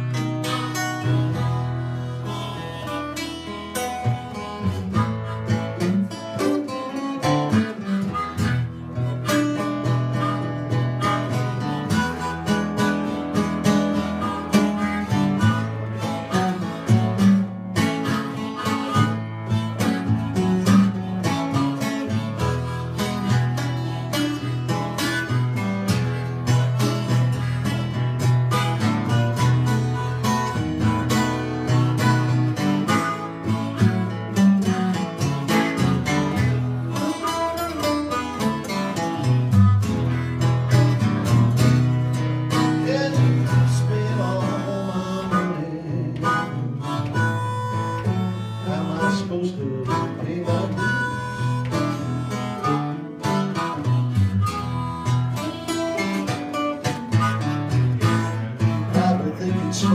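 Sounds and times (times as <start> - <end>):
acoustic guitar strumming blues: 0.0 - 59.9
harmonica playing lead: 0.0 - 59.9.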